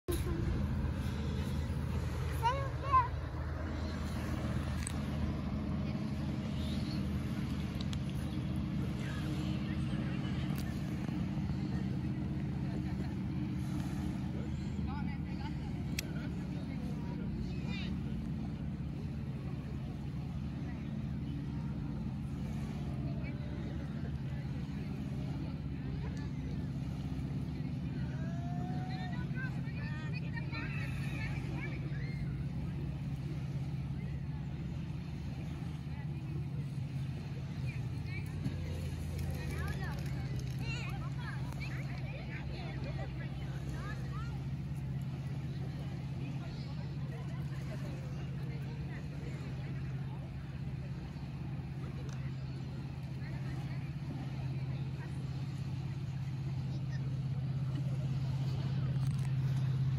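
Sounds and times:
faint voices: 0.0 - 59.9
low engine hum: 0.0 - 59.9.

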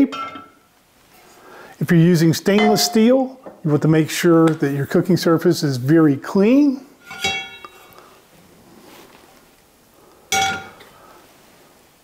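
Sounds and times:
metal skillet clanking on stovetop: 7.0 - 7.8, 10.3 - 10.9.

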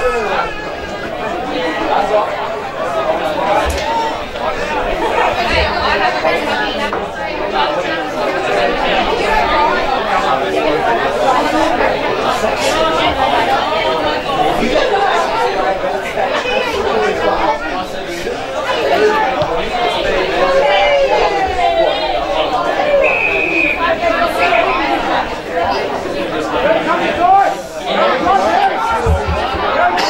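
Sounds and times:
indistinct chatter of voices: 0.0 - 30.0.

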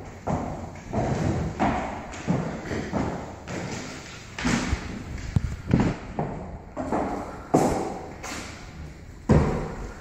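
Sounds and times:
footsteps on wooden floor: 0.0 - 8.4.

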